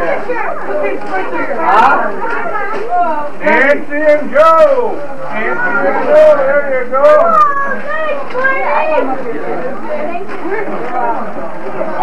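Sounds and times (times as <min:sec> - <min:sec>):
crowd of people chattering: 0:00.0 - 0:12.0.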